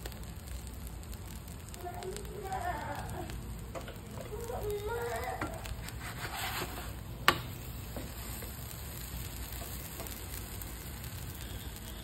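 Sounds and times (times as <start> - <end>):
spatula scraping a pan: 5.3 - 10.2.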